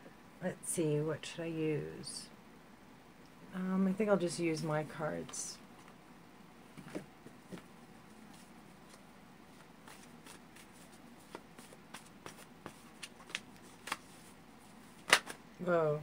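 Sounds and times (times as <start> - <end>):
cards being shuffled: 8.3 - 15.4.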